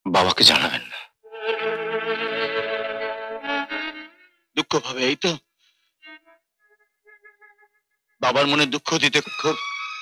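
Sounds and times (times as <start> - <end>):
bowed strings holding a note: 1.3 - 4.4
man's voice: 8.2 - 9.6.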